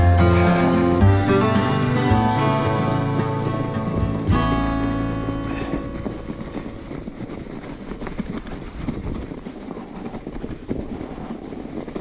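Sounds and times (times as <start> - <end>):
bike tyres rumbling over snow: 0.0 - 12.0
wind on microphone: 0.0 - 12.0
bike rattling and knocking: 5.6 - 12.0.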